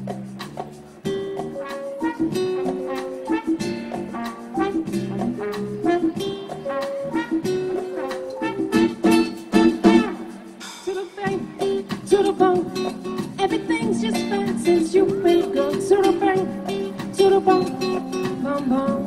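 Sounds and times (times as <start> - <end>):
acoustic guitar: 0.0 - 19.0
live band playing: 0.0 - 19.0.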